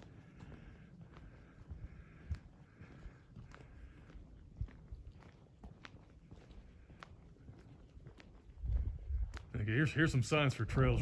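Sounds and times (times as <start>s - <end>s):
footsteps on gravel path: 0.0s - 11.0s.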